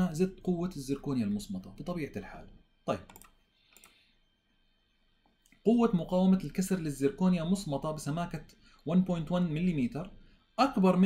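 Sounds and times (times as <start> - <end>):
faint computer clicks: 3.0 - 4.0.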